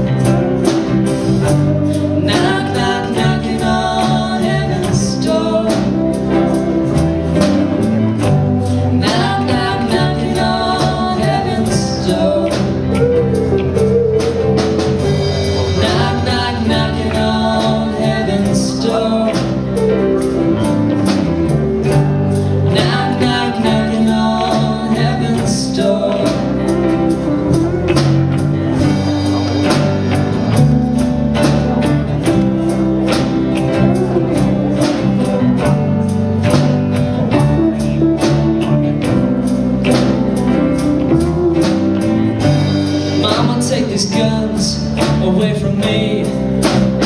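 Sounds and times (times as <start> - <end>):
drum kit beat: 0.0 - 47.0
electric bass: 0.0 - 47.0
electric guitars: 0.0 - 47.0.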